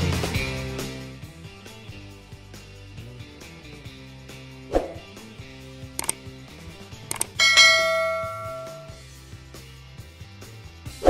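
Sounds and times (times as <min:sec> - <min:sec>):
mouse clicks: 0:07.1 - 0:07.4
bell ding: 0:07.1 - 0:09.0.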